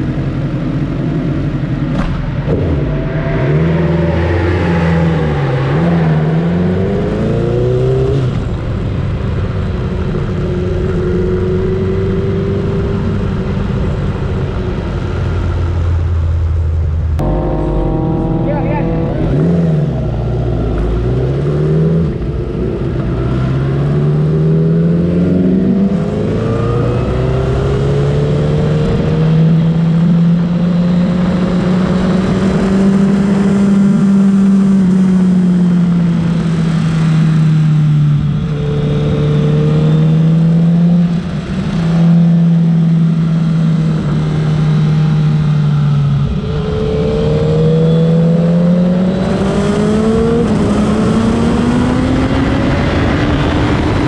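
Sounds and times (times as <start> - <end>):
motorcycle engine accelerating: 0.0 - 54.0.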